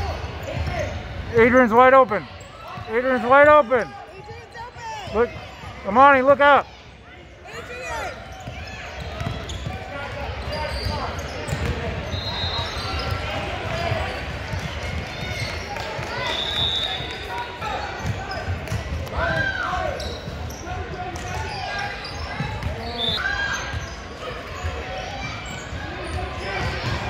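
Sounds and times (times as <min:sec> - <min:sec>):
voices of players and spectators: 0:00.0 - 0:27.0
sneaker squeaks: 0:00.2 - 0:05.6, 0:07.5 - 0:27.0
basketball bouncing: 0:08.4 - 0:10.6, 0:11.2 - 0:12.1.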